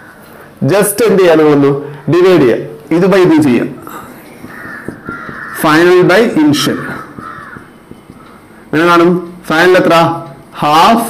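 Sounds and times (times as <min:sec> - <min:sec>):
man speaking: 0:00.6 - 0:04.2, 0:05.6 - 0:07.2, 0:08.7 - 0:11.0
bird calling: 0:03.8 - 0:09.4.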